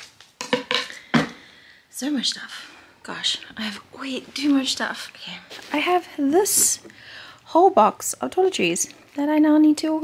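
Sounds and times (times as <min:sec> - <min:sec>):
toiletries knocking and clattering: 0:00.4 - 0:01.4.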